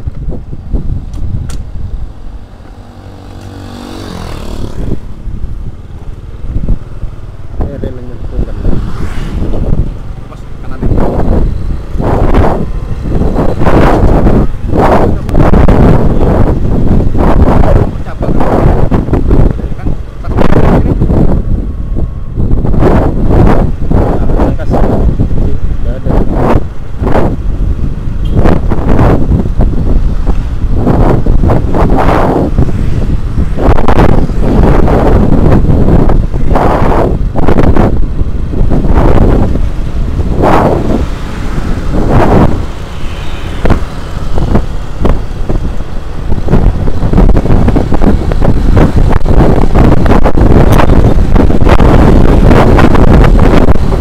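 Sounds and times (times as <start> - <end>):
road noise: 0.0 - 54.0
wind buffeting microphone: 0.0 - 54.0
motorbike engine running: 0.2 - 25.7.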